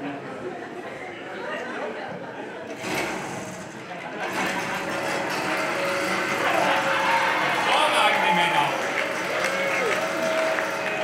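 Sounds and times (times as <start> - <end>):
petrol generator running: 2.7 - 11.0.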